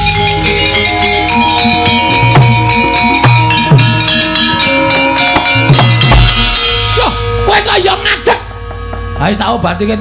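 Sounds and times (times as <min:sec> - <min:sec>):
gamelan metallophones and gongs: 0:00.0 - 0:10.0.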